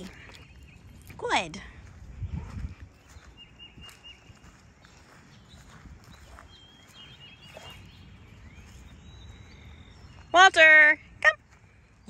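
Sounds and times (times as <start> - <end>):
footsteps on grass: 0.0 - 10.3.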